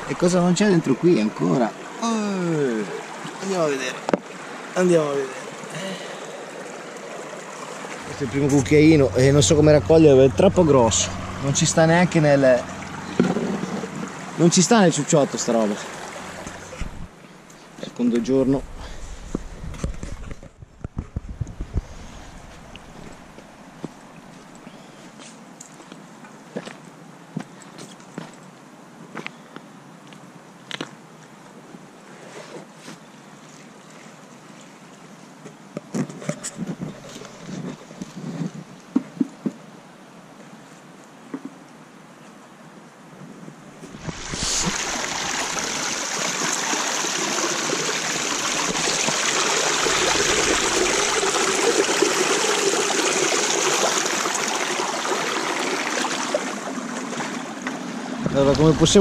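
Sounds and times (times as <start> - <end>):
stream water over stones: 0.0 - 28.8, 30.6 - 41.9, 43.6 - 59.0.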